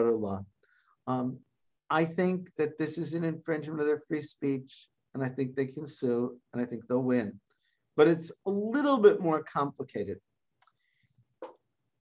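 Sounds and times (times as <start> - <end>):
man speaking: 0.0 - 10.3.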